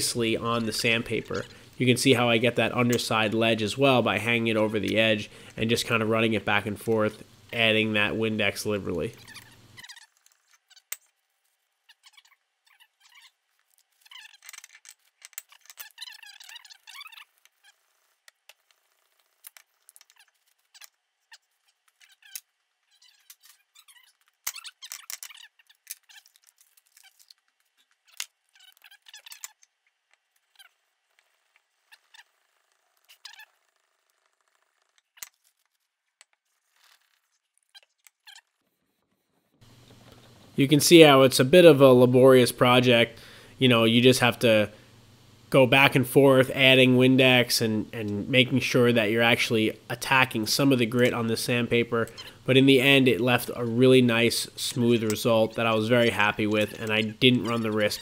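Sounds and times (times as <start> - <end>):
metal scraping on wet sandpaper: 52.9 - 58.0.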